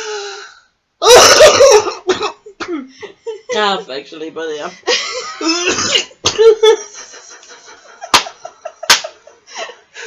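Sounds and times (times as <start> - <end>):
women coughing: 1.1 - 2.9, 5.3 - 6.8
women laughing: 4.8 - 9.9.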